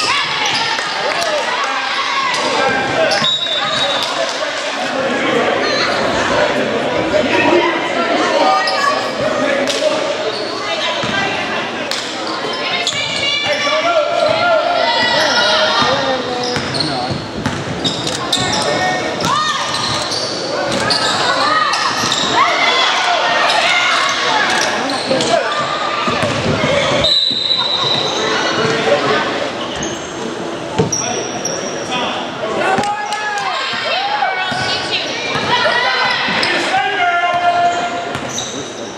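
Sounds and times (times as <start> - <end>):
voices of spectators and players: 0.0 - 38.9.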